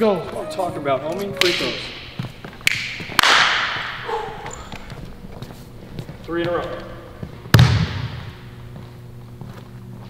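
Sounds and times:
steady low hum: 0.0s - 10.0s
basketball bounce echoing: 6.0s - 8.5s.

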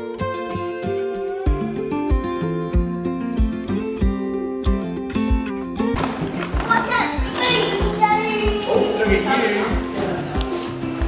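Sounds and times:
background music with steady beat: 0.0s - 11.0s
young children chattering: 6.5s - 10.3s.

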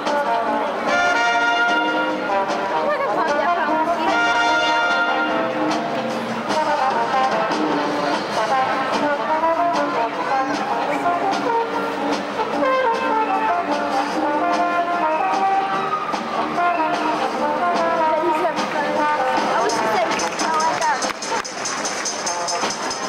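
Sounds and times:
brass band playing: 0.0s - 23.0s.

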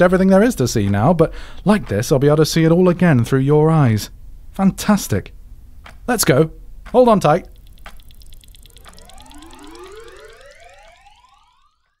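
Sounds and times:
fast pulsing shimmer: 7.5s - 11.8s
rising electronic sweeps: 7.5s - 12.0s.

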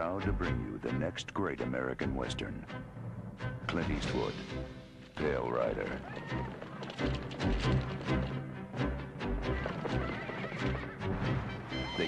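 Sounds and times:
orchestral film music: 0.0s - 12.0s
horse hoofbeats: 5.2s - 12.0s
horse neighing: 9.3s - 12.0s.

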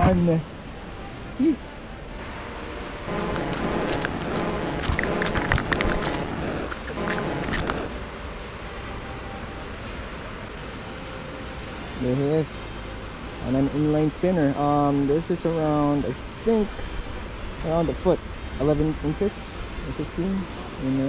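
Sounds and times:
street background: 0.0s - 21.0s
crackling clicks: 3.1s - 8.0s.

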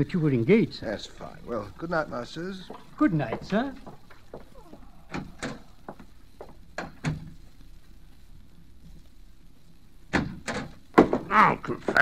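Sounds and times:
door lock knocks and clicks: 10.1s - 11.2s
sharp knocks: 10.1s - 12.0s.

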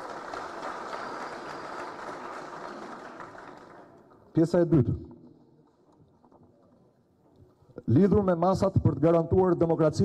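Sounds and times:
audience applauding: 0.0s - 4.3s.

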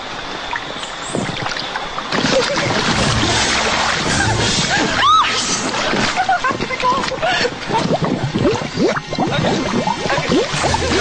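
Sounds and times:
wind on microphone: 2.5s - 11.0s.

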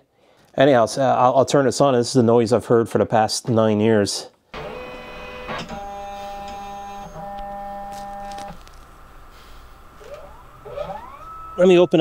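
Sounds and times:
scanner hum: 4.6s - 12.0s
scanner motor whining: 4.6s - 12.0s.

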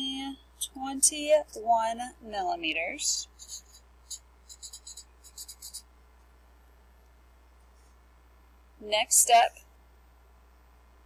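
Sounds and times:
marker squeaky strokes: 3.2s - 5.9s.

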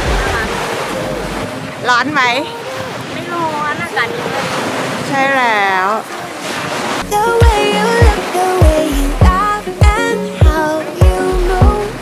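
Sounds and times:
surf washing on beach: 0.0s - 12.0s.

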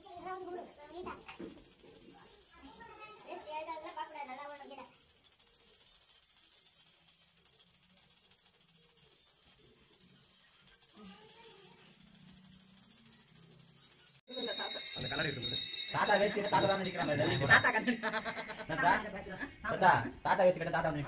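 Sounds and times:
brass hand bell ringing: 0.0s - 18.4s.

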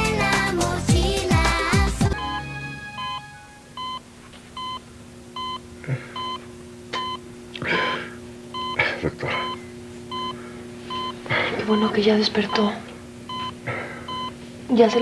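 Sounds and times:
patient monitor beeping: 2.2s - 14.4s
breathy sounds from patient: 5.8s - 6.4s, 7.6s - 11.8s, 13.6s - 14.2s.

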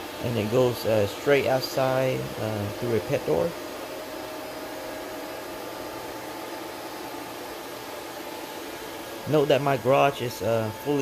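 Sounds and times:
cooling fans whirring: 0.0s - 11.0s.

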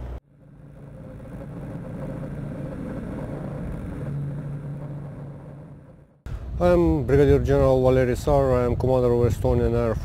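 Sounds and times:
aircraft engines droning: 0.0s - 9.1s
low hum: 0.0s - 10.0s.

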